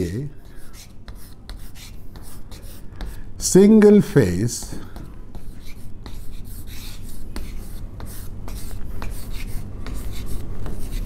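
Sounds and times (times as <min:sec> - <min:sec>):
chalk writing on blackboard: 0:00.0 - 0:03.3, 0:04.6 - 0:11.0.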